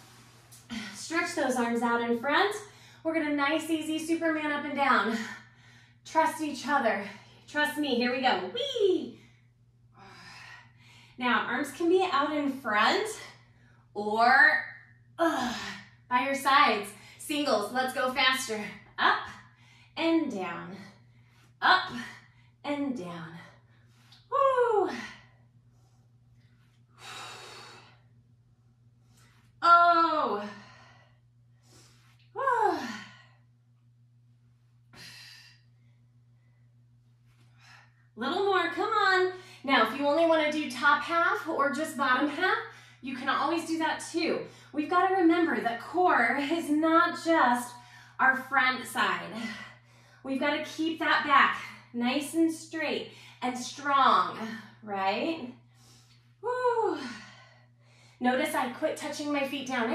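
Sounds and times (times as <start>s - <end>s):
faint low hum: 0.0s - 59.9s
woman breathing hard: 24.9s - 28.2s.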